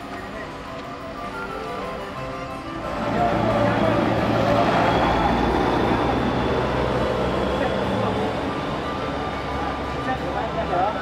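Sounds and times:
road noise: 0.0s - 11.0s
vehicle engine hum: 2.1s - 11.0s
indistinct voices: 2.8s - 11.0s.

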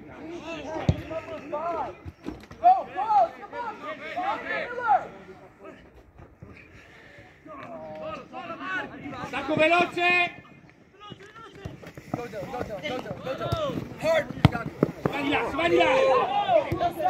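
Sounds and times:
voices shouting: 2.6s - 5.3s, 13.2s - 17.0s.

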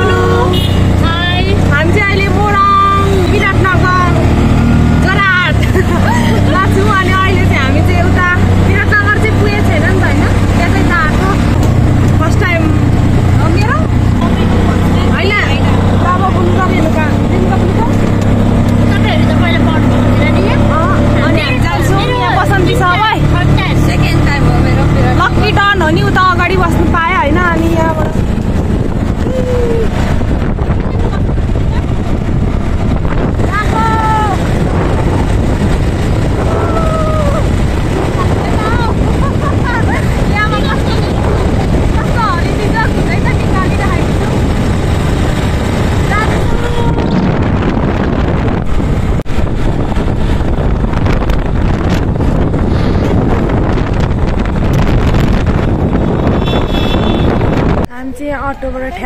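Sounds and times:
women chattering and laughing: 0.0s - 32.3s, 36.2s - 47.1s, 57.9s - 59.0s
rickshaw engine drone: 0.0s - 59.0s.

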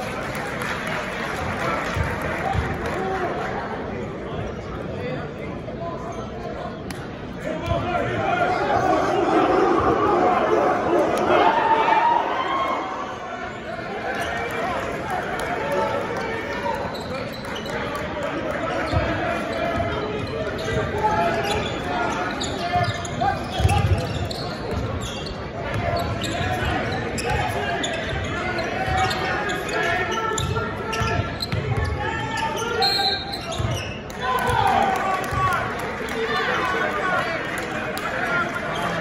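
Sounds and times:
voices echoing in a hall: 0.0s - 39.0s.

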